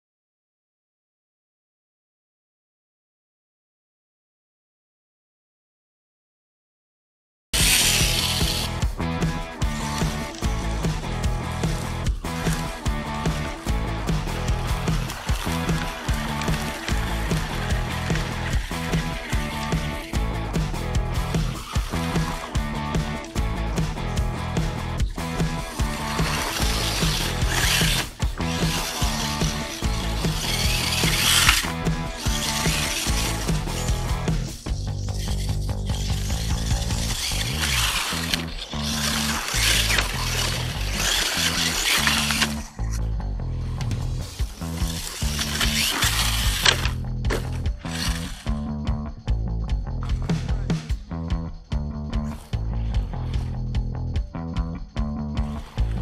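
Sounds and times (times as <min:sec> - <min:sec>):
background music with steady beat: 0:07.6 - 0:37.6, 0:39.7 - 0:56.0.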